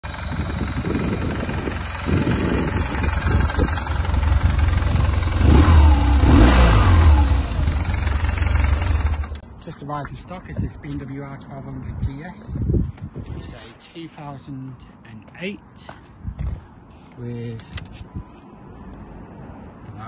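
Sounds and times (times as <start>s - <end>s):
motorcycle engine idling and revving: 0.0s - 9.6s.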